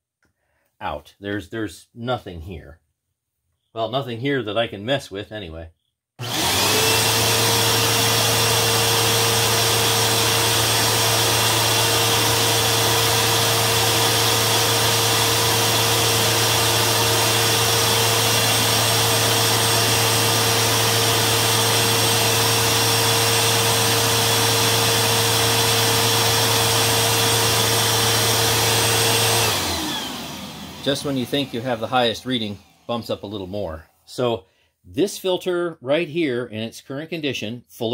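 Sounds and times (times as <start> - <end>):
motor winding down: 6.2 - 33.6
vacuum cleaner motor whine: 6.2 - 33.6.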